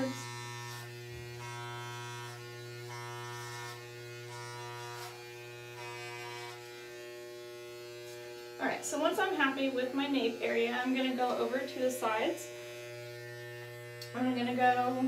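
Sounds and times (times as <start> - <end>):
electric hair clipper buzzing: 0.0 - 15.0.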